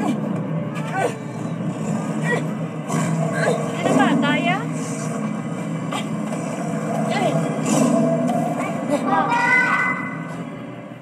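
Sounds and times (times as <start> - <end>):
low soundtrack hum: 0.0 - 11.0.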